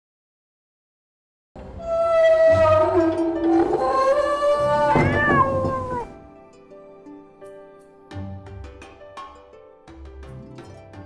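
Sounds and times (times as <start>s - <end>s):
wooden doors creaking on hinges: 1.6s - 6.2s
doors knocking shut: 3.4s - 6.2s.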